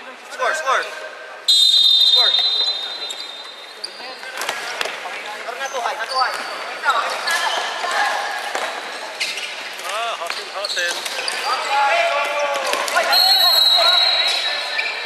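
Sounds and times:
referee's whistle: 0:01.5 - 0:04.0, 0:13.0 - 0:15.0
sneakers squeaking on wooden floor: 0:01.6 - 0:15.0.

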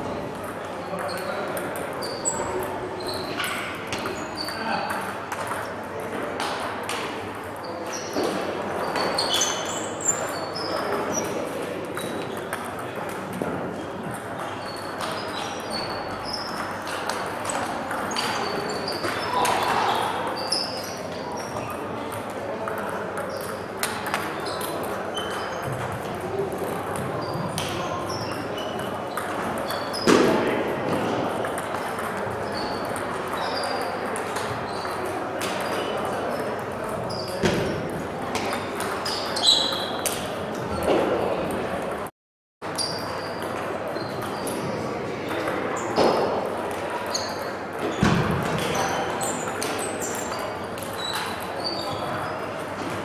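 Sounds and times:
murmur of voices: 0:00.0 - 0:42.1, 0:42.9 - 0:53.0
ping-pong balls clicking: 0:00.3 - 0:07.1, 0:10.2 - 0:19.6, 0:20.2 - 0:30.2, 0:30.9 - 0:37.1
short high squeaks: 0:02.0 - 0:04.6, 0:08.8 - 0:11.3, 0:39.0 - 0:40.1.

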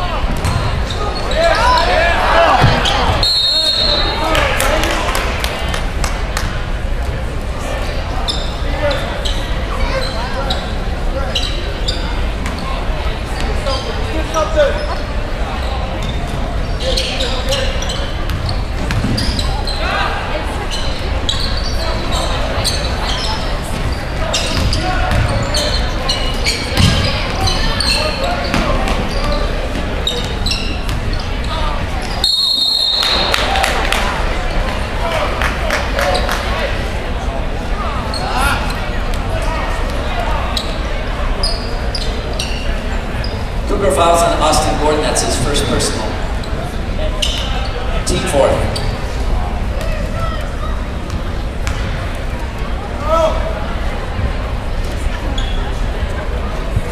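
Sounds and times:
crowd chatter: 0:00.0 - 0:56.9
sneakers squeaking on hardwood: 0:00.3 - 0:01.9, 0:02.5 - 0:04.1, 0:08.2 - 0:12.7, 0:13.4 - 0:19.9, 0:20.6 - 0:32.7, 0:40.5 - 0:43.6, 0:47.2 - 0:50.2
referee's whistle: 0:02.8 - 0:04.3, 0:32.2 - 0:33.5.

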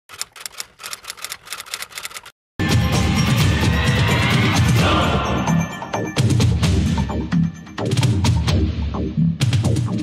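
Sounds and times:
typewriter keys clacking: 0:00.1 - 0:02.3.

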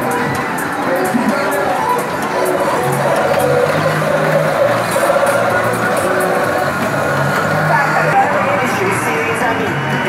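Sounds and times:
loud fairground ride music: 0:00.0 - 0:10.0.

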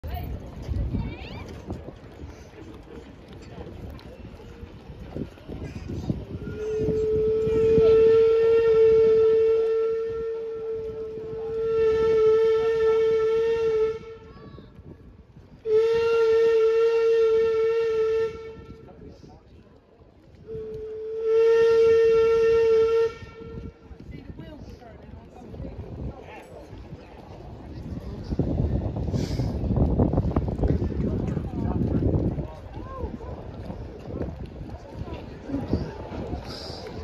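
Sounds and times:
steam whistle blasts: 0:06.5 - 0:14.3, 0:15.6 - 0:18.8, 0:20.5 - 0:23.8.

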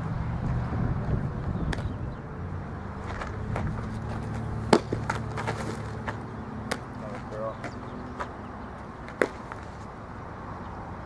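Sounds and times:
ball smacking into mitt: 0:03.1 - 0:08.3, 0:09.0 - 0:09.7.

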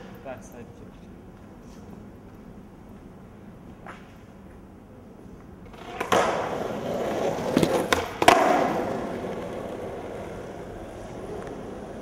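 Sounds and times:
skateboard wheels rolling on asphalt: 0:02.2 - 0:12.0
skateboard clacking: 0:05.7 - 0:12.0.

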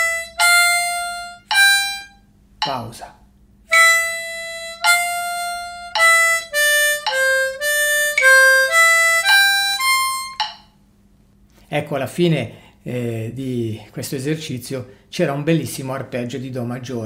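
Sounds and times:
harmonica playing single notes: 0:00.0 - 0:02.8, 0:03.7 - 0:10.8.

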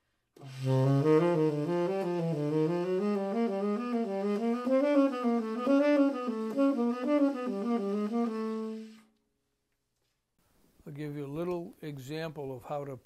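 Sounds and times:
tenor saxophone playing jazz: 0:00.4 - 0:09.2.

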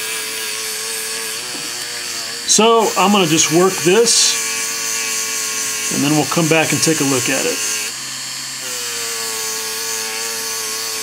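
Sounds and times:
buffing wheel polishing plastic: 0:00.0 - 0:11.0
rotary tool whining: 0:00.0 - 0:11.0.

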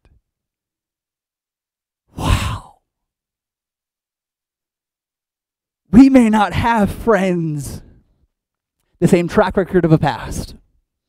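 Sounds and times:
man sighing: 0:02.1 - 0:02.8.

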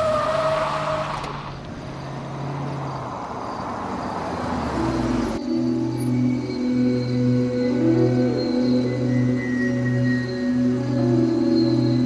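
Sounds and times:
car engine and tyre noise: 0:00.0 - 0:12.0.

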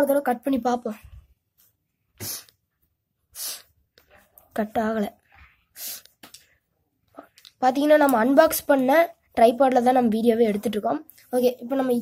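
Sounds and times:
sharp puffs of breath: 0:02.2 - 0:02.6, 0:03.3 - 0:03.8, 0:05.7 - 0:06.2.

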